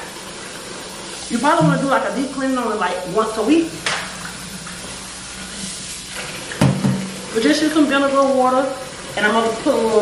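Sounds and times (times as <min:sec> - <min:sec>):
tap water running into sink: 0:00.0 - 0:10.0.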